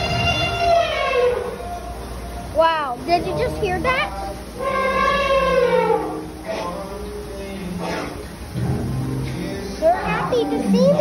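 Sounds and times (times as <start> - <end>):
recorded elephant trumpeting: 0.0 - 2.3, 4.3 - 6.8, 7.8 - 8.3, 9.9 - 11.0.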